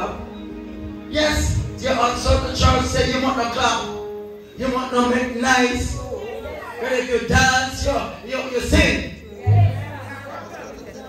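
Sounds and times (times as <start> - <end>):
faint chatter: 3.6 - 11.0
low bass note: 9.4 - 10.5.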